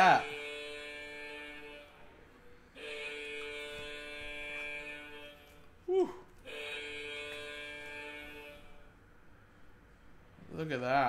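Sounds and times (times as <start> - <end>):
electric alarm buzzer: 0.0 - 5.8, 6.4 - 9.5.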